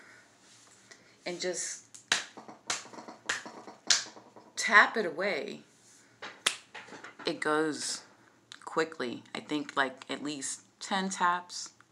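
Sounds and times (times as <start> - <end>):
feet tapping on floor: 2.2 - 4.6.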